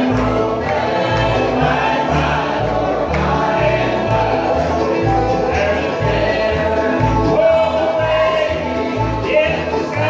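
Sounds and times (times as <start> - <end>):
bluegrass band playing: 0.0 - 10.0
voices singing in harmony: 0.0 - 10.0.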